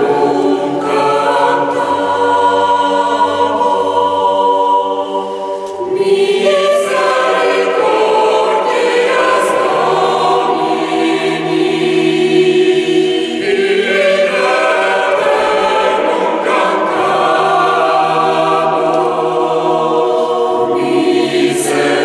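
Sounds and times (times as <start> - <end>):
mixed choir singing a cappella: 0.0 - 22.0.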